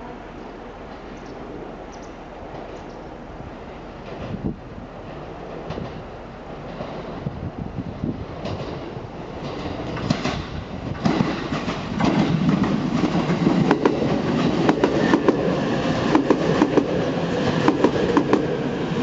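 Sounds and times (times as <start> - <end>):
train running rumble: 2.3 - 19.0
train wheels clicking over rail joints: 8.4 - 18.6.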